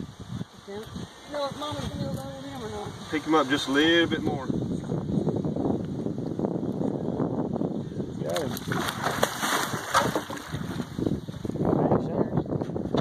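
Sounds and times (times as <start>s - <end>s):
wind noise on microphone: 0.0s - 13.0s
fish thrashing and splashing: 8.3s - 11.3s.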